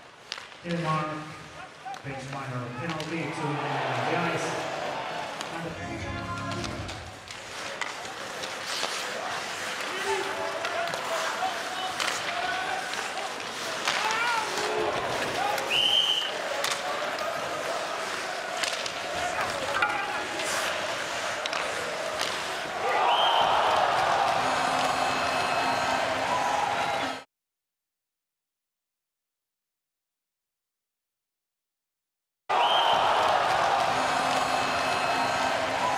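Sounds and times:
hockey sticks and puck clacking: 0:00.0 - 0:01.0, 0:01.6 - 0:05.8, 0:06.4 - 0:27.2, 0:32.8 - 0:35.9
crowd din: 0:02.9 - 0:27.2, 0:32.5 - 0:35.9.

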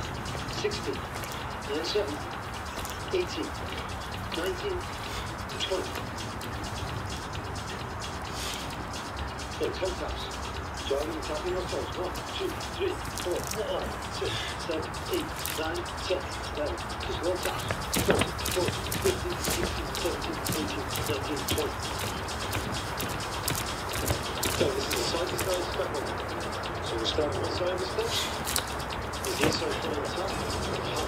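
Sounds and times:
muffled talking: 0:00.0 - 0:31.0
outdoor background noise: 0:00.0 - 0:31.0.

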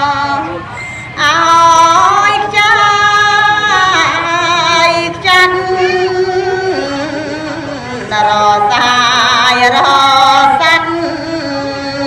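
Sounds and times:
woman chanting into a microphone: 0:00.0 - 0:12.0.

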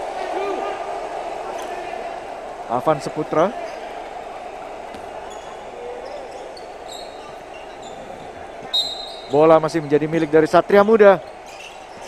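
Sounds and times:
sneaker squeaks on court: 0:04.9 - 0:09.3.

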